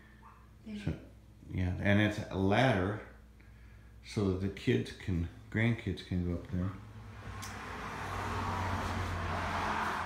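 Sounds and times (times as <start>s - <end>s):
steady low hum: 0.0s - 8.0s
car passing by: 6.9s - 10.0s.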